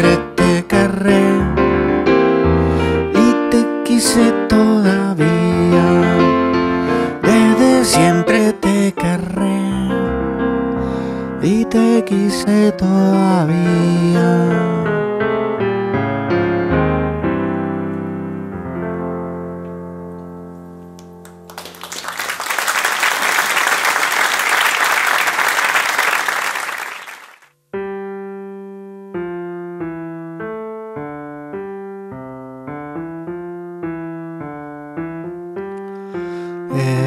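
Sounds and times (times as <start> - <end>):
keyboard piano chords: 0.0 - 22.3, 27.5 - 37.0
audience applause: 21.2 - 27.4.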